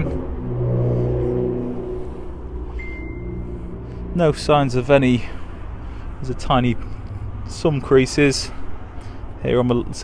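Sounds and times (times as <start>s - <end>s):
car engine idling: 0.0s - 10.0s
thin high steady tone: 2.7s - 3.6s.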